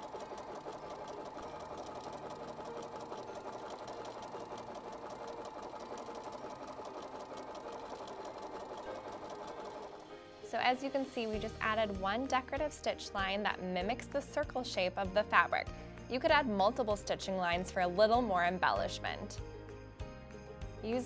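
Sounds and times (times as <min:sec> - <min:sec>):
sewing machine stitching: 0:00.0 - 0:10.1.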